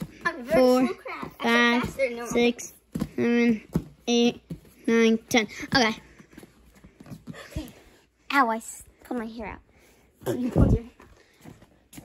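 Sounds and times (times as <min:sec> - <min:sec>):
hands and feet thumping on foam mats: 0:00.0 - 0:07.9.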